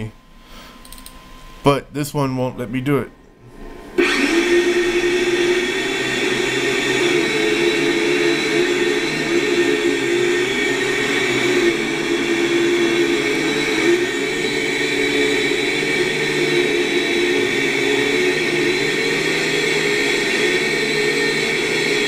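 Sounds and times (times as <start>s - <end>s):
drone propellers whirring: 3.5s - 22.0s.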